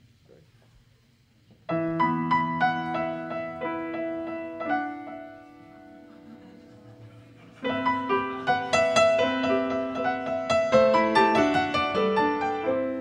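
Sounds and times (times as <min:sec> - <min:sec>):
sustained piano chords: 0:01.6 - 0:13.0.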